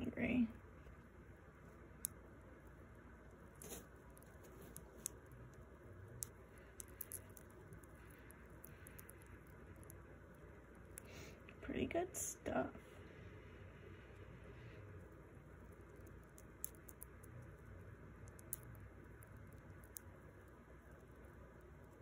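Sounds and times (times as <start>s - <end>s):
hamster nibbling seeds: 1.6s - 11.5s, 13.9s - 22.0s.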